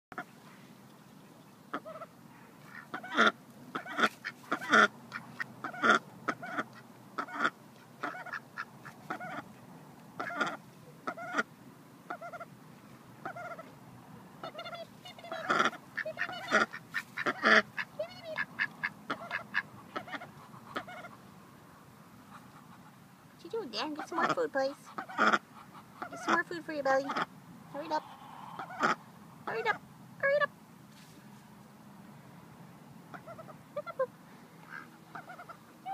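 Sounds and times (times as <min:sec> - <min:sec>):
duck quacking: 0:01.7 - 0:09.4, 0:10.2 - 0:11.5, 0:13.2 - 0:13.7, 0:14.4 - 0:21.2, 0:23.8 - 0:29.8, 0:33.1 - 0:35.9.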